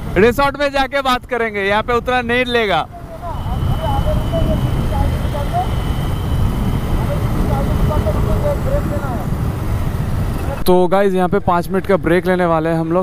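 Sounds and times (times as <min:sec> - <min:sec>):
wind buffeting microphone: 0:00.0 - 0:10.6
motorcycle engine and road rumble: 0:00.0 - 0:10.8.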